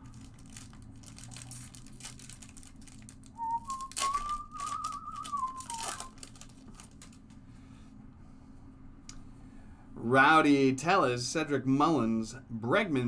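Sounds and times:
foil wrapper crinkle: 0.0s - 7.4s
cards flicked and shuffled: 1.6s - 7.4s
person whistling: 3.4s - 6.2s.

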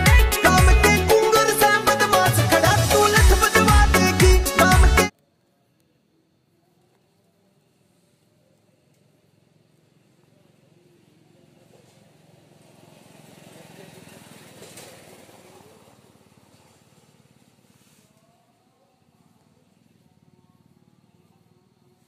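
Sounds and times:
distant vehicle passing: 12.0s - 17.6s.

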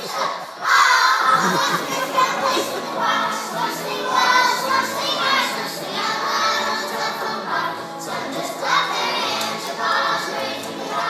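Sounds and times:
children shouting together: 0.0s - 3.4s
children singing: 0.0s - 11.0s.

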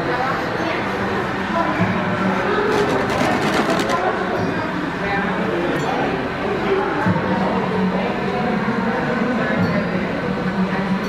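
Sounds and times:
shoppers chattering: 2.2s - 5.0s.

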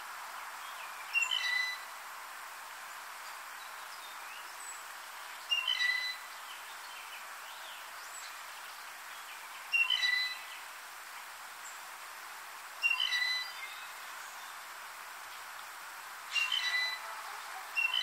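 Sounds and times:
steady background hiss: 0.0s - 18.0s
bird creaky squeak call: 5.6s - 6.2s, 9.9s - 10.4s, 12.9s - 13.5s, 16.3s - 17.0s.

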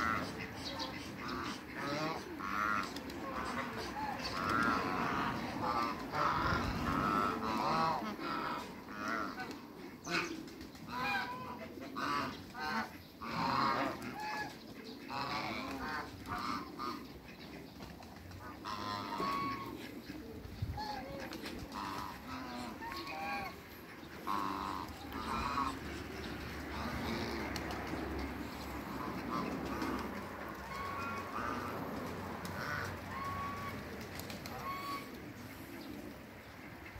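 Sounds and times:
geese honking: 0.0s - 17.6s, 18.4s - 35.7s.

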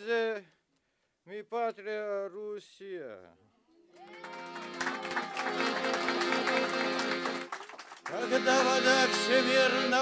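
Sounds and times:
piano accordion playing: 4.2s - 10.0s.

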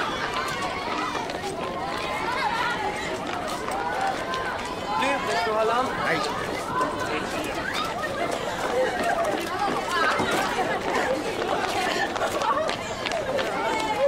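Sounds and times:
children chattering and calling out: 0.0s - 14.0s
running footsteps: 0.0s - 14.0s.

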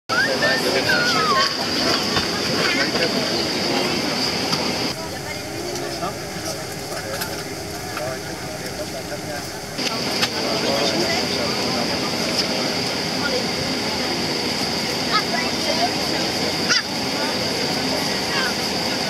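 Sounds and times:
airplane cabin noise: 0.1s - 19.0s
people talking: 0.1s - 19.0s.

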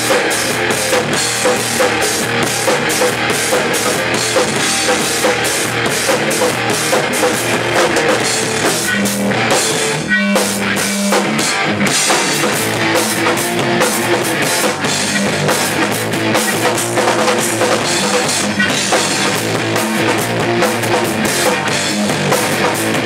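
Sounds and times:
distorted electric guitars: 0.0s - 23.0s
drum kit with cymbals: 0.0s - 23.0s
rock band playing: 0.0s - 23.0s.

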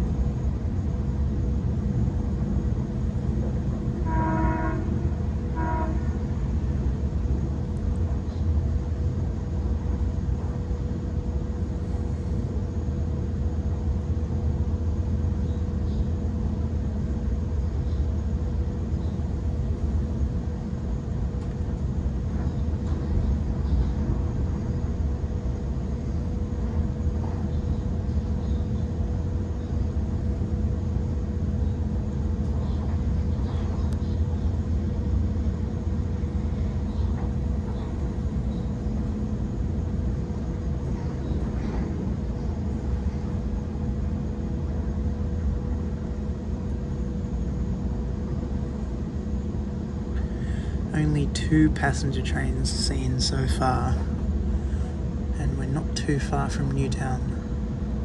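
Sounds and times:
constant train hum: 0.0s - 58.0s
train wheels rumbling on rail: 0.0s - 58.0s.

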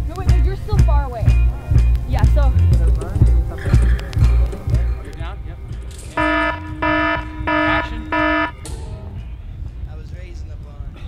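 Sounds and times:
wind rumble on microphone: 0.0s - 11.0s
electronic alarm beeps: 6.2s - 8.6s.

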